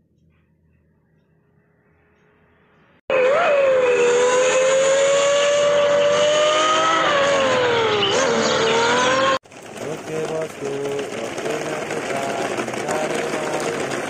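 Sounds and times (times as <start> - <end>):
supercar engine revving high: 3.1 - 9.4.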